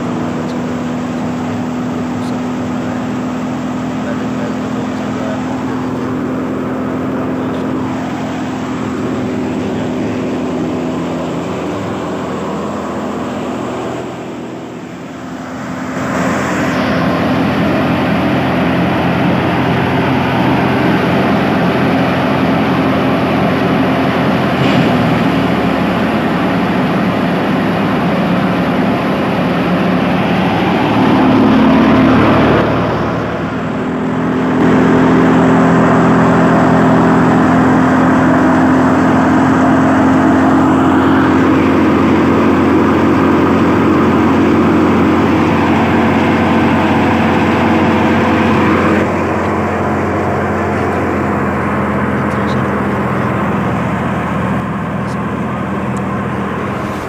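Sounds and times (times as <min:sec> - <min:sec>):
thresher running: 0:00.0 - 0:57.0.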